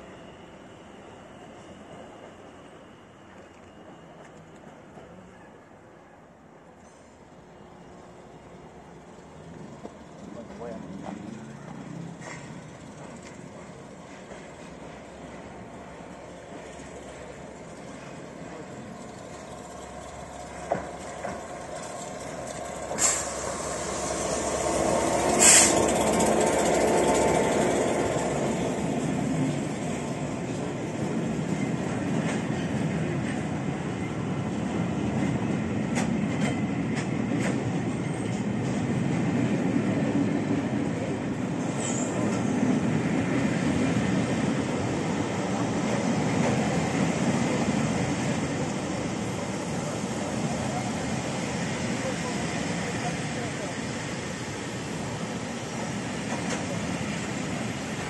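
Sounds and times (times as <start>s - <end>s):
diesel locomotive passing: 0.0s - 58.0s
train wheels rumbling: 8.5s - 58.0s.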